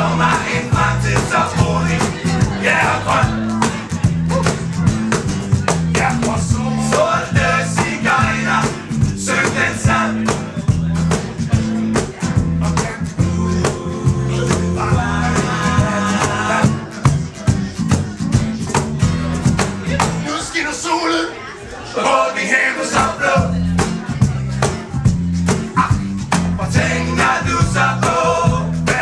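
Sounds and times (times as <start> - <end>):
walking electric bass line: 0.0 - 20.3, 23.0 - 29.0
acoustic guitars strummed fast: 0.0 - 20.5, 22.7 - 29.0.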